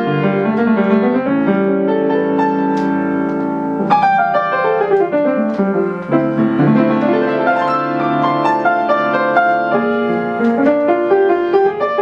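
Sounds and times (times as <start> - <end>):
slow piano piece: 0.0 - 12.0.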